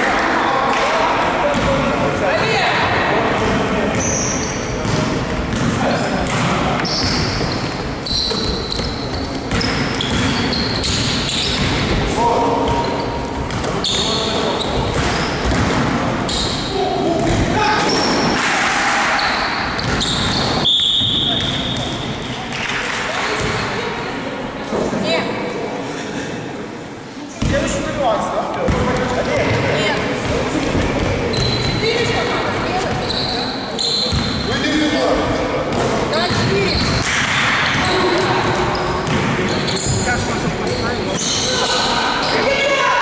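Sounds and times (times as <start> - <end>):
sneakers squeaking: 2.4 - 22.6, 28.6 - 42.9
whistle blast: 20.0 - 21.4.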